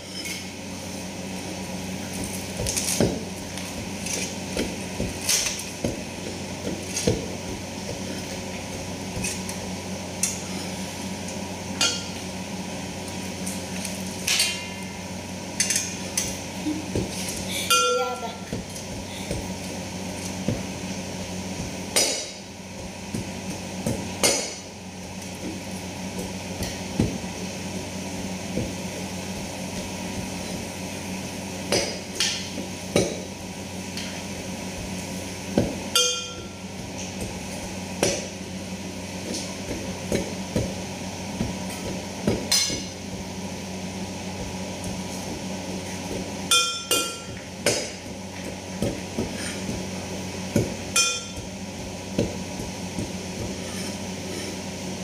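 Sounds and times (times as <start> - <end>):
pestle pounding in brass mortar: 44.3 - 54.0.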